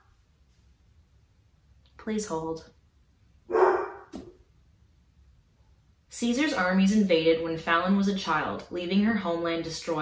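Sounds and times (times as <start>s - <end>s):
dog barking: 3.5s - 4.1s.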